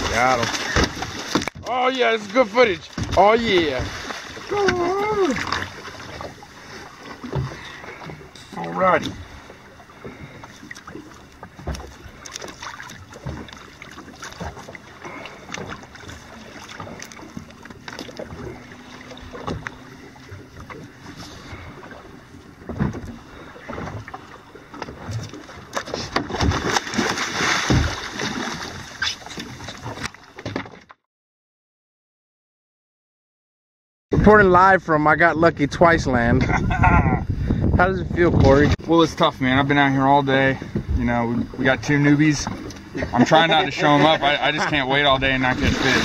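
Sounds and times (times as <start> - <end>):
water splashing against boat hull: 0.0 - 31.0, 38.3 - 46.0
wind on microphone: 35.5 - 38.9.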